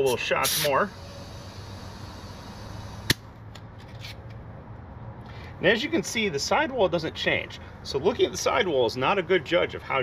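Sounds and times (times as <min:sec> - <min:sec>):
compressed air hissing into tire: 0:00.0 - 0:03.2.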